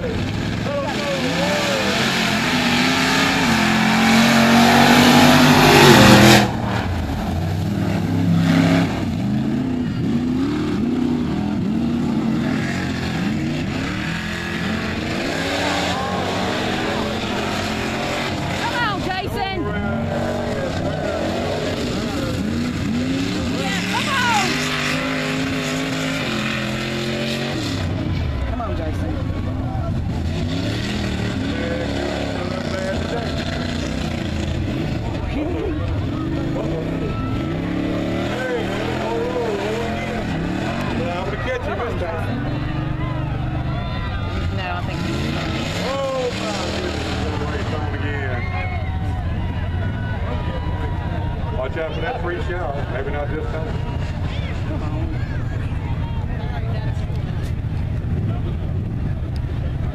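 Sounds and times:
truck engines revving: 0.0 - 59.9.

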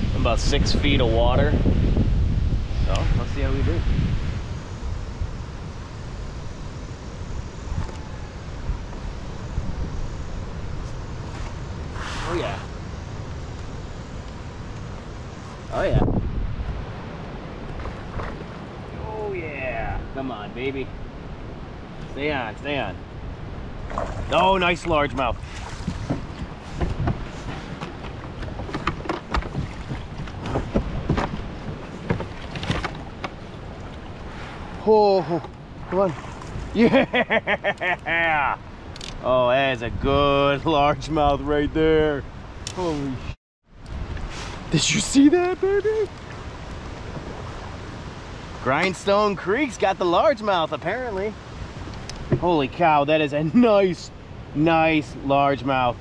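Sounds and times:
wind buffeting microphone: 0.0 - 37.2, 38.6 - 56.0.

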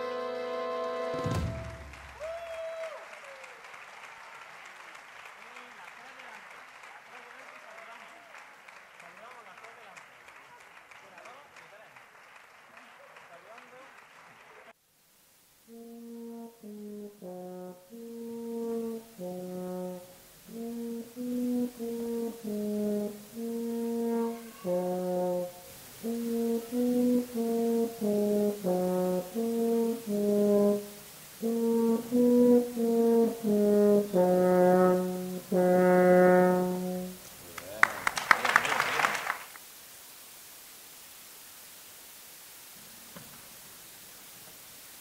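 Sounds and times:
french horn melody: 0.0 - 2.1, 15.7 - 37.4
applause: 0.2 - 14.8, 37.4 - 39.6.

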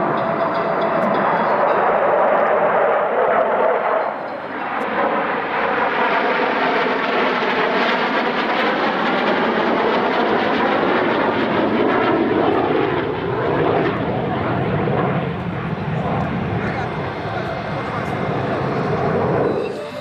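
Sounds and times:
jet fighters flying past: 0.0 - 20.0.

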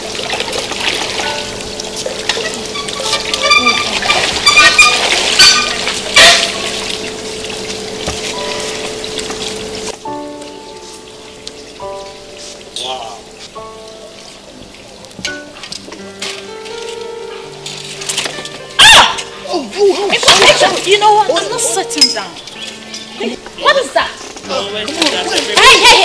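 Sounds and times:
background music: 0.0 - 26.0
pool water splashing: 0.0 - 26.0.

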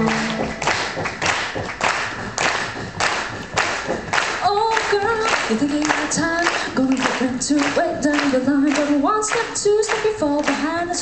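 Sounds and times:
cello and voice chord: 0.0 - 0.8
rhythmic hand clapping: 0.0 - 11.0.

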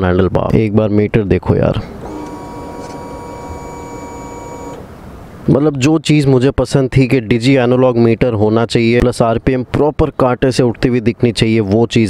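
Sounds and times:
motorcycle electric whine and hum: 1.9 - 5.0.

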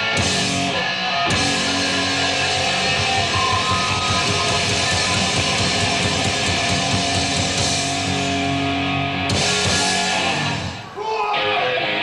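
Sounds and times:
hard rock band playing: 0.0 - 12.0.

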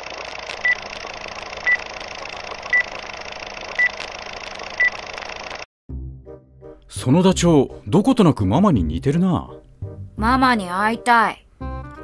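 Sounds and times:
film projector whirring hiss: 0.0 - 5.7.

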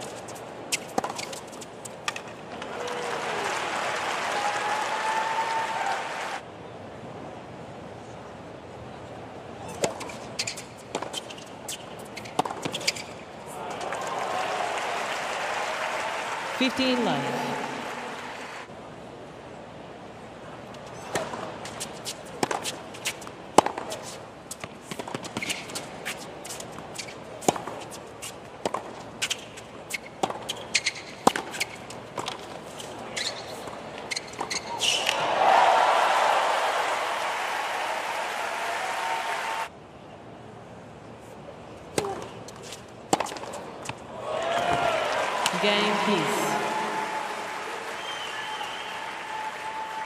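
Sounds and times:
crowd applauding and cheering: 2.6 - 6.4, 13.6 - 18.7, 35.1 - 39.7, 44.2 - 50.0
rackets striking tennis ball: 9.8 - 13.1, 21.1 - 25.9, 28.6 - 32.6, 41.9 - 44.0
tennis ball bouncing: 9.8 - 13.1, 21.1 - 23.9, 28.6 - 32.6, 41.9 - 44.0.

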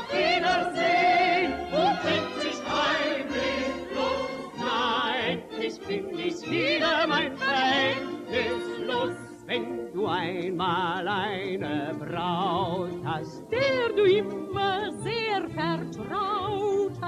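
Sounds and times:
instrumental accompaniment: 0.0 - 17.0
person singing with vibrato: 0.0 - 17.0.

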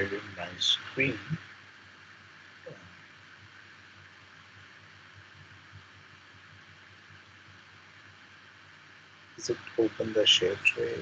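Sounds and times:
faint steady hiss: 0.0 - 11.0
low hum: 0.0 - 11.0.

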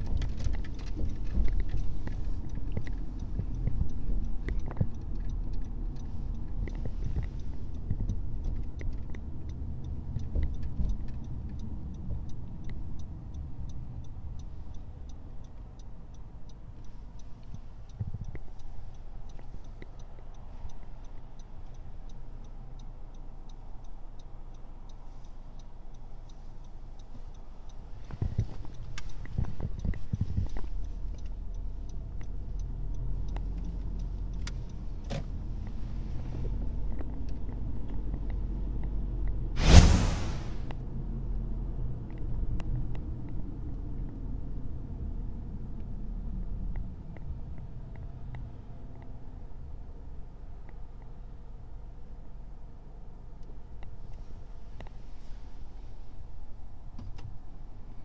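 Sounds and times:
faint regular ticking: 0.0 - 39.2
car engine and tyre rumble: 0.0 - 58.0.

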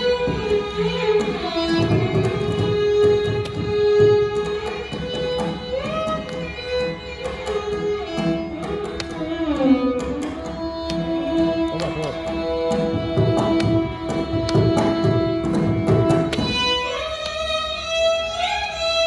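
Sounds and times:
violin ensemble playing in unison: 0.0 - 19.0.

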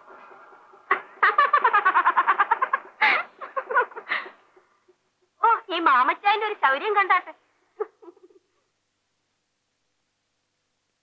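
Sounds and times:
woman giggling: 1.2 - 5.3, 7.8 - 8.6.

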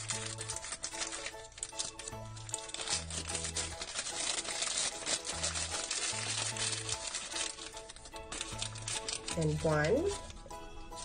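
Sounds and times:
background music with slow bass: 0.0 - 11.0
plastic wrapper crinkling: 0.0 - 11.0.

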